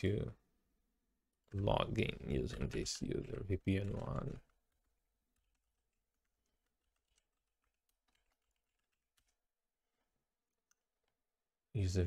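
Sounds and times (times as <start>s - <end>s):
faint keyboard typing: 1.4s - 11.6s.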